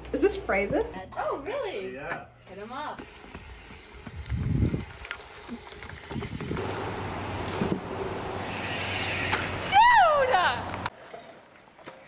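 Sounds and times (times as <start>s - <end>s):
bicycle tyre and wind rushing: 3.0s - 10.9s
person whooping: 9.7s - 10.6s.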